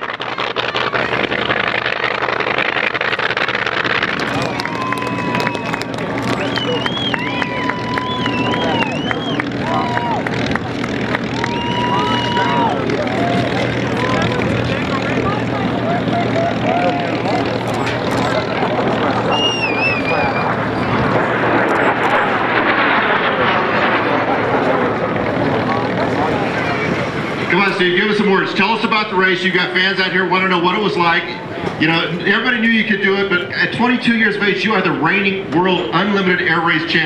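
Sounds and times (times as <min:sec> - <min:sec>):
aircraft engine humming: 0:00.0 - 0:37.0
crowd voices: 0:00.0 - 0:37.0
high whistles: 0:05.4 - 0:09.6, 0:19.3 - 0:20.6.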